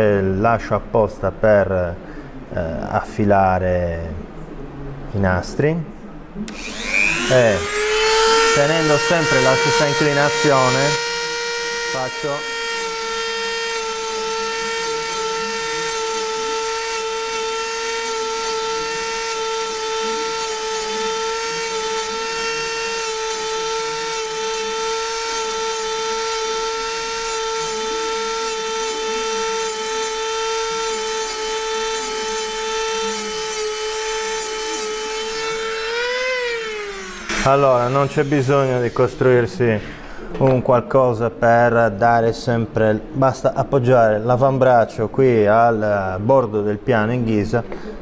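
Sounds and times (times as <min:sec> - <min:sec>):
rotary tool grinding whine: 0:06.5 - 0:40.0.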